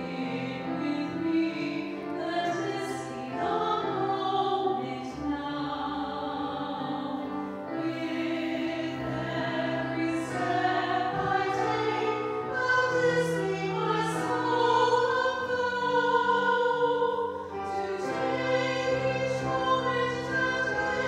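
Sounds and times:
hymn singing: 0.0s - 21.0s.

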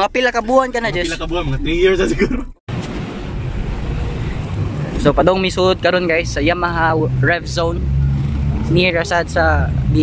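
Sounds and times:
street traffic hum: 0.0s - 10.0s.

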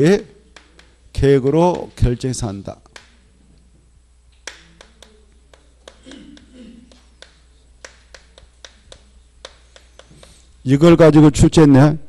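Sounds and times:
chalk writing on blackboard: 4.5s - 10.6s.

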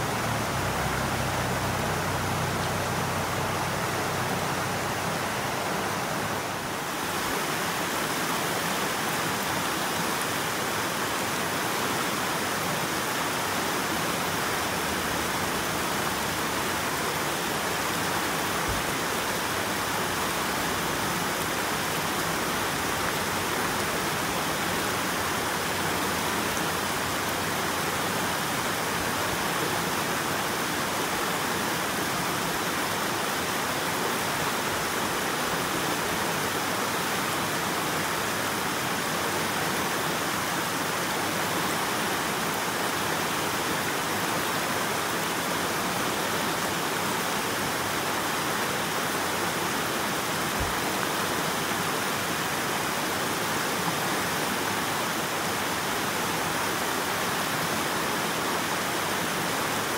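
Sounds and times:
stream rushing over rocks: 0.0s - 59.9s.

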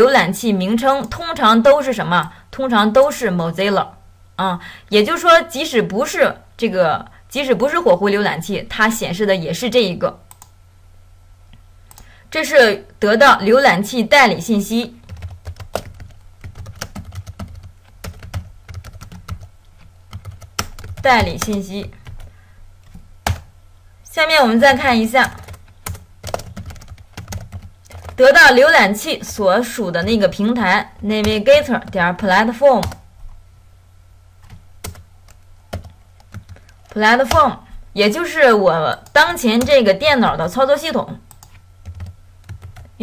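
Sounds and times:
computer keyboard typing: 15.0s - 23.5s, 24.7s - 28.3s, 32.8s - 33.0s, 34.4s - 37.5s, 41.3s - 42.9s.

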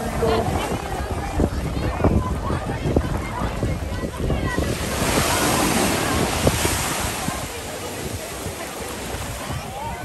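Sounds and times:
ocean surf washing on rock: 0.0s - 10.0s
people talking in background: 0.0s - 10.0s.

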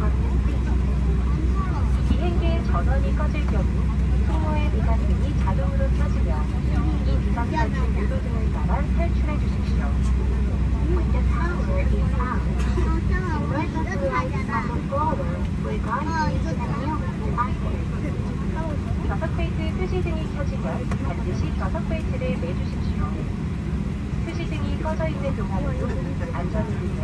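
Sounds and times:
airliner cabin drone: 0.0s - 27.0s.

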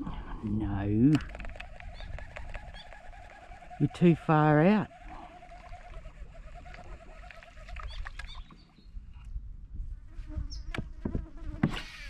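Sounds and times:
faint chirps and clicks: 1.1s - 3.8s, 5.0s - 9.3s
fly buzzing: 1.2s - 8.4s, 10.2s - 12.0s.

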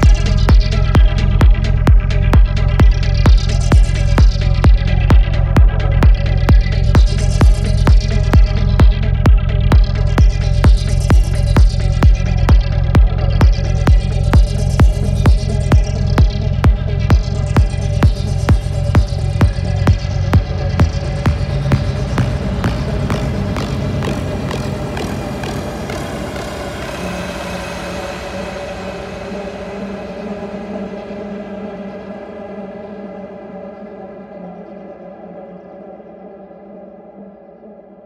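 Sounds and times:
electronic kick drum beat: 0.0s - 27.5s
sustained synth tones: 9.2s - 31.4s.

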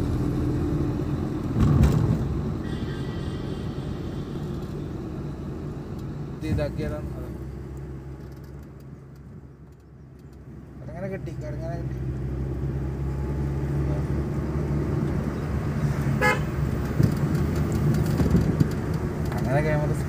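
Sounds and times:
car engine and road noise: 0.0s - 20.0s
short horn toot: 2.6s - 4.6s.

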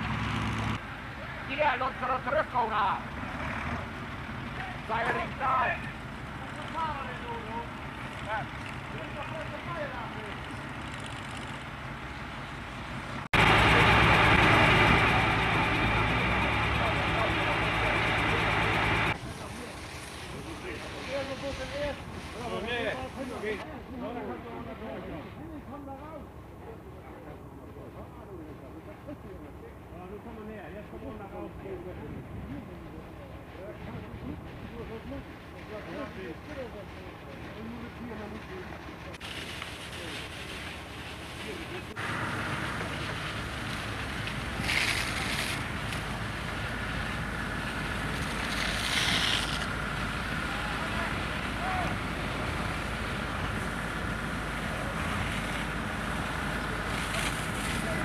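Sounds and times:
steady engine-like hum: 0.0s - 19.7s, 25.9s - 58.0s
loud rushing machine noise: 12.9s - 19.2s, 41.9s - 58.0s.

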